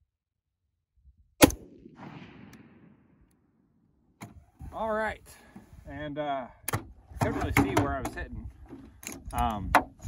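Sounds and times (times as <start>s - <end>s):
rifle shot: 1.4s - 3.3s.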